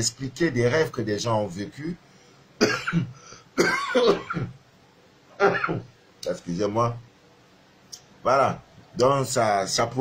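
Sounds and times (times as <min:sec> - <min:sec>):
man coughing: 0:02.6 - 0:04.6, 0:05.4 - 0:05.9.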